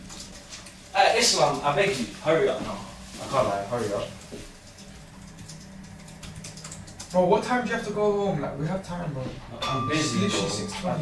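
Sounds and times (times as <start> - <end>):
computer keyboard typing: 4.6 - 7.2.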